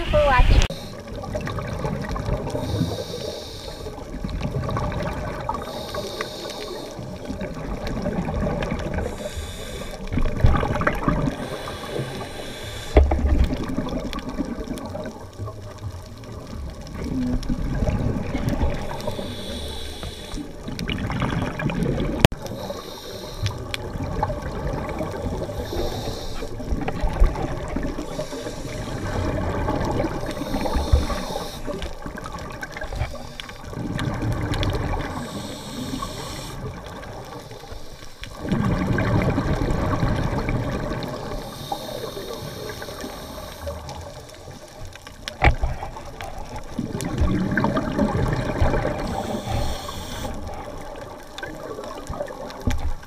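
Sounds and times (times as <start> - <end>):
gurgling exhaled bubbles: 0.0 - 53.0
regulator hiss on inhale: 0.6 - 1.2, 2.5 - 4.1, 5.5 - 7.2, 8.9 - 10.2, 11.3 - 13.2, 18.7 - 20.7, 22.4 - 23.8, 25.4 - 26.8, 28.0 - 29.4, 30.2 - 32.1, 32.8 - 33.7, 35.0 - 38.4, 41.1 - 44.8, 49.0 - 51.3.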